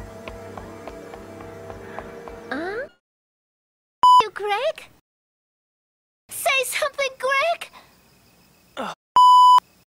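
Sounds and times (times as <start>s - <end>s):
electronic censor bleep: 4.0s - 4.3s, 9.2s - 9.7s.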